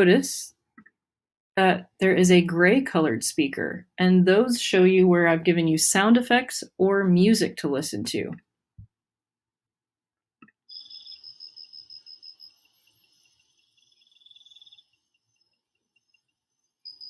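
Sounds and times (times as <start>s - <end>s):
cricket chirping trill: 10.7s - 17.0s.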